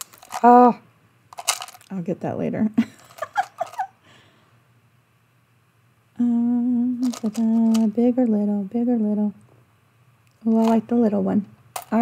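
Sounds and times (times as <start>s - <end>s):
woman humming: 6.2s - 8.0s.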